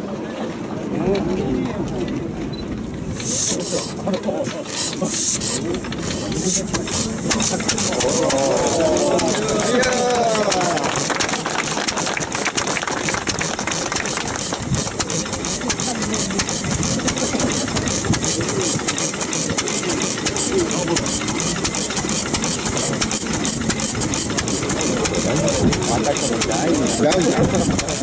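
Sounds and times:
crowd voices: 0.0s - 28.0s
stationary engine running: 3.0s - 28.0s.

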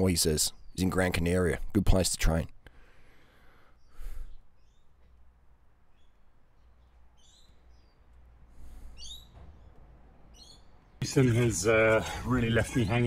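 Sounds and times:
high bird chirps: 3.7s - 5.2s, 5.9s - 11.1s.

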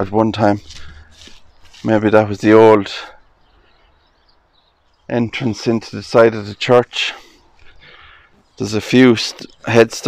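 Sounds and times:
distant birds chirping: 0.0s - 10.0s.

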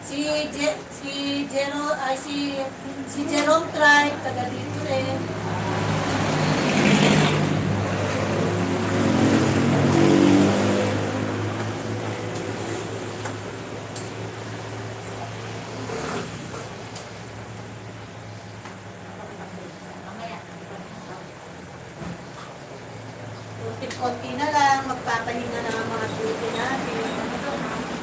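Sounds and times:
vehicle engine hum: 0.0s - 28.0s.

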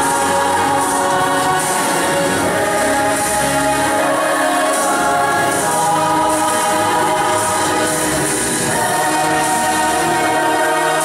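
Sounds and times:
youth choir singing: 0.0s - 11.0s.

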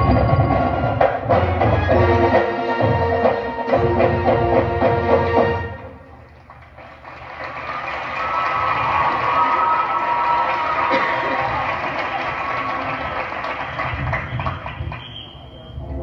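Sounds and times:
crowd applauding and cheering: 6.0s - 15.8s.

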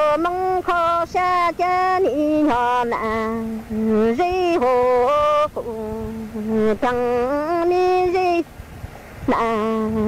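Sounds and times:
person singing long held notes: 0.0s - 8.5s, 9.2s - 10.0s.

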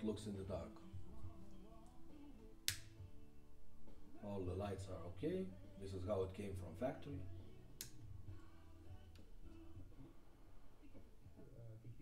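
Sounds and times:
light switch click: 2.6s - 2.9s.

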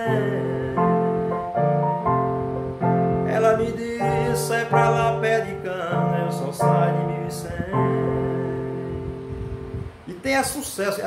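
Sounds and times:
man singing: 0.0s - 1.8s, 3.2s - 9.2s
electronic keyboard chords: 0.0s - 10.1s.

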